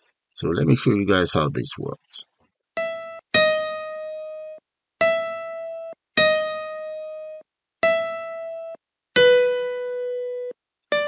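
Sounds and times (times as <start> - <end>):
piano notes: 2.8 - 11.0.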